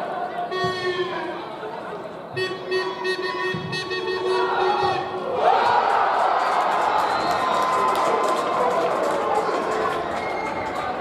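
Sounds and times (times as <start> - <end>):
crowd chanting: 3.9 - 7.2.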